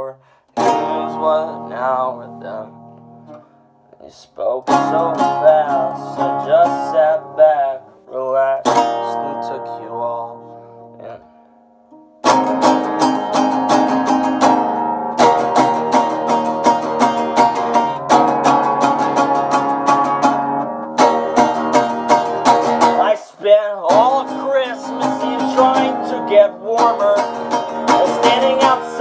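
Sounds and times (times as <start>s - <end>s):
acoustic guitar playing: 0.0s - 29.0s.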